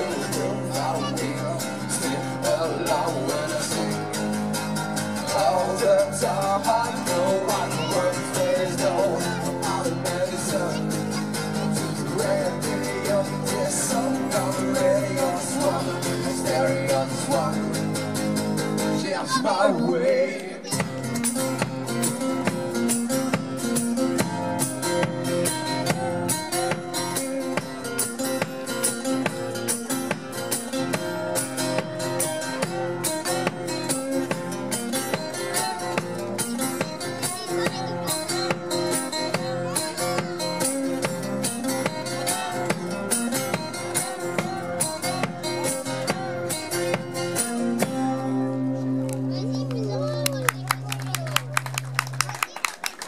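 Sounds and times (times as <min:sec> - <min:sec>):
acoustic guitars strumming: 0:00.0 - 0:52.2.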